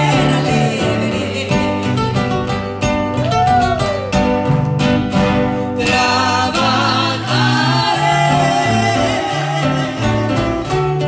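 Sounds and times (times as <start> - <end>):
man and woman singing a hymn: 0.0 - 2.0, 5.6 - 10.6
acoustic guitars strumming: 0.0 - 11.0
bass line: 0.0 - 11.0.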